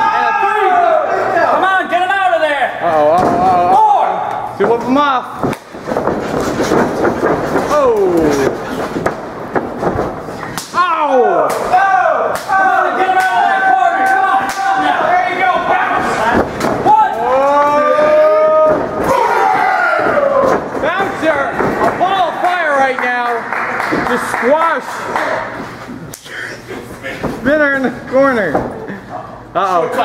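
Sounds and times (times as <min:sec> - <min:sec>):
men shouting: 0:10.8 - 0:22.4.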